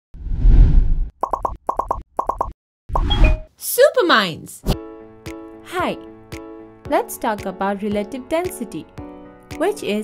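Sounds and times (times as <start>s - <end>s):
low rumbling whoosh: 0.2s - 1.1s.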